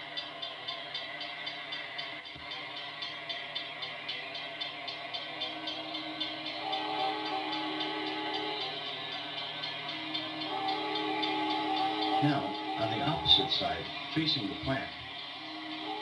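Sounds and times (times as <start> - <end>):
railroad crossing bell ringing: 0.0 - 16.0.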